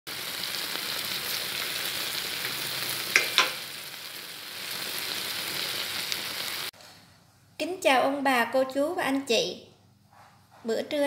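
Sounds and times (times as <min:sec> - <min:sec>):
food sizzling in hot oil: 0:00.1 - 0:06.7.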